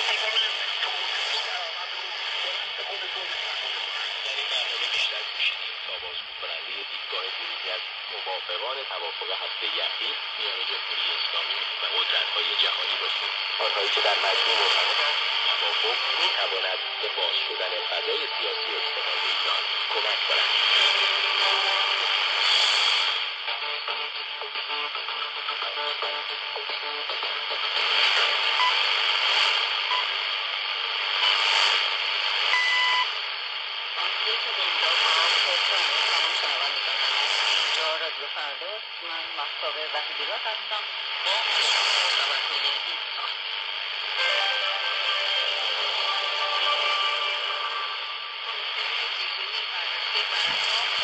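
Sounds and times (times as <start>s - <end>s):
man talking over radio: 0.0s - 31.8s, 33.8s - 51.0s
shortwave static hiss: 0.0s - 51.0s.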